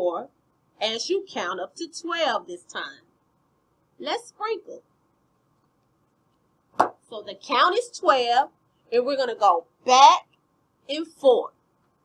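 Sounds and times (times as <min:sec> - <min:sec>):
sharp knock: 0:06.8 - 0:07.0.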